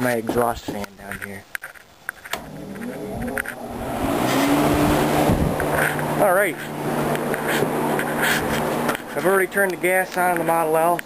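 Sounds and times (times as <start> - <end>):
electric fan humming: 1.9 - 11.0.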